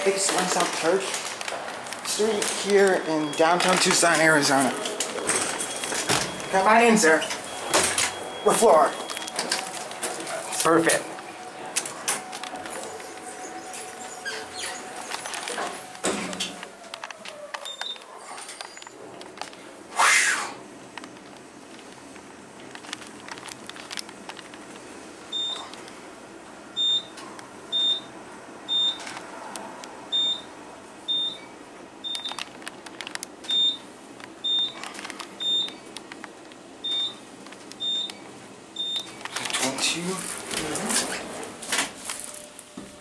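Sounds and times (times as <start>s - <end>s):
elevator hum: 0.0s - 19.9s
elevator electronic beeps: 2.6s - 10.5s, 17.6s - 18.0s, 25.3s - 25.7s, 26.8s - 28.1s, 28.7s - 29.0s, 30.1s - 30.5s, 31.1s - 32.4s, 33.5s - 34.8s, 35.4s - 35.8s, 36.8s - 37.2s, 37.8s - 39.2s.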